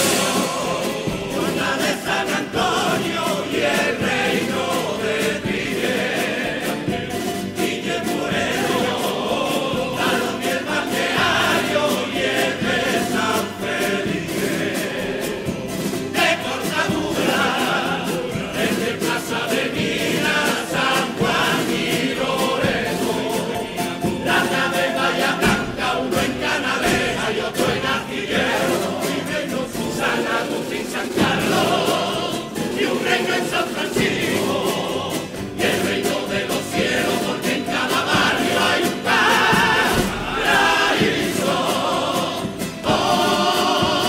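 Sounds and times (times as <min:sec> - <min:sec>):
male chorus singing in harmony: 0:00.0 - 0:44.0
strummed guitars: 0:00.0 - 0:44.0.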